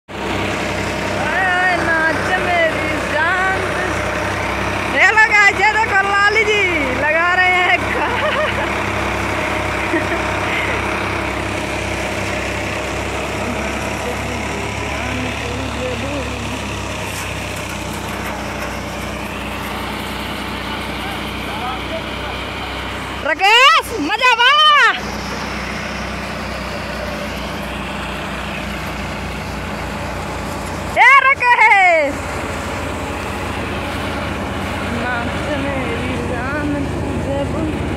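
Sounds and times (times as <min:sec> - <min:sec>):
paddy thresher running: 0:00.1 - 0:37.9
tractor engine hum: 0:00.1 - 0:37.9
people calling out: 0:20.7 - 0:25.1, 0:30.9 - 0:32.2.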